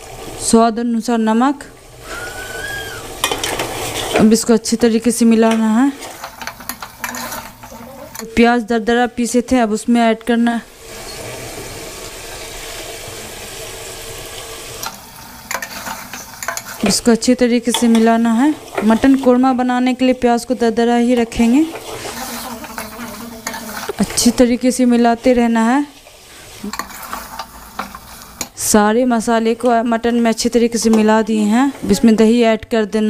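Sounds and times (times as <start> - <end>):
meat sizzling in oil: 1.7 - 8.4, 10.7 - 32.0
metal spatula scraping a pot: 3.2 - 4.2, 5.5 - 8.4, 15.5 - 17.0, 21.3 - 24.3, 26.1 - 28.5.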